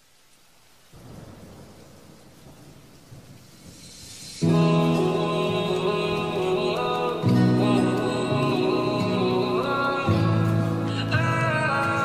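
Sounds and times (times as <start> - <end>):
rain hiss: 0.0 - 12.0
low thunder rumble: 0.9 - 6.4.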